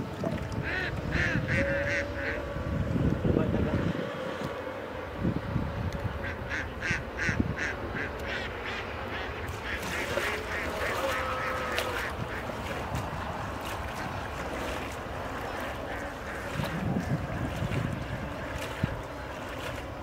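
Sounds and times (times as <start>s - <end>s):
hand splashing water: 9.5s - 20.0s.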